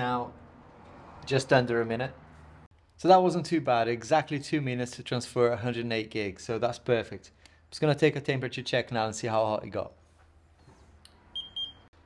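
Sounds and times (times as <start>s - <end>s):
short high beeps: 11.4s - 11.9s.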